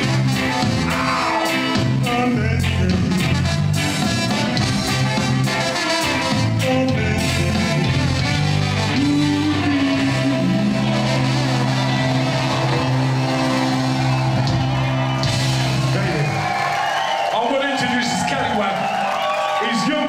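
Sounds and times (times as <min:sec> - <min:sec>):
crowd cheering and shouting: 0:00.0 - 0:06.6, 0:07.2 - 0:20.0
ska band sustained chord: 0:00.0 - 0:17.1.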